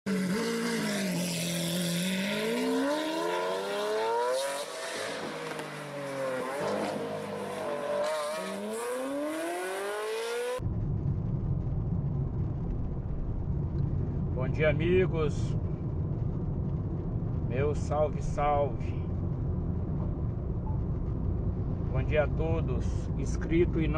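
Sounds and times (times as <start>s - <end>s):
car engine revving: 0.0s - 10.6s
car driving on highway: 0.1s - 23.9s.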